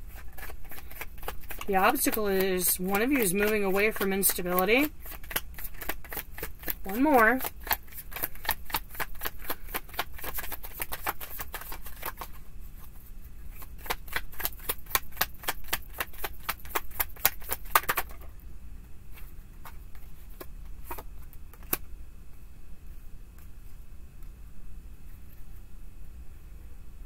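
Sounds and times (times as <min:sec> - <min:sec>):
cards being shuffled: 0:00.0 - 0:18.3, 0:19.1 - 0:21.8.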